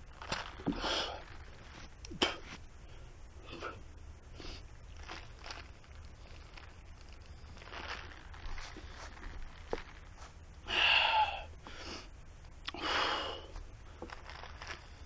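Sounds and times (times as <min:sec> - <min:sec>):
person breathing heavily: 0:00.6 - 0:01.3, 0:10.6 - 0:13.6.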